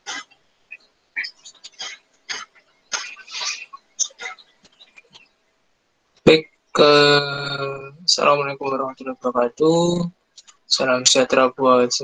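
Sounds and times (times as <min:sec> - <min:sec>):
man coughing and clearing throat: 0:01.8 - 0:04.4.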